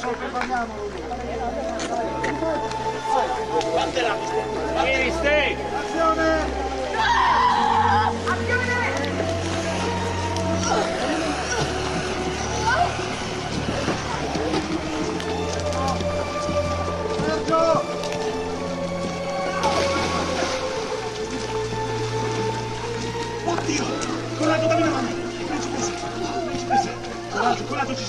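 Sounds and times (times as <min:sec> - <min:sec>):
music of sustained chords: 0:00.0 - 0:28.0
indistinct voices calling out: 0:04.2 - 0:18.0.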